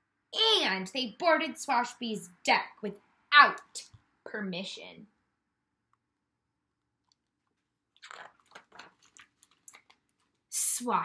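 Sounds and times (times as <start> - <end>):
book pages turning: 7.5 - 10.4.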